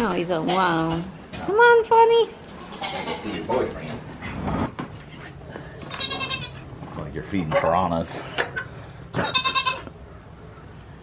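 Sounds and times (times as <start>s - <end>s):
goat bleating: 2.6s - 3.5s, 5.8s - 6.7s, 9.1s - 9.9s.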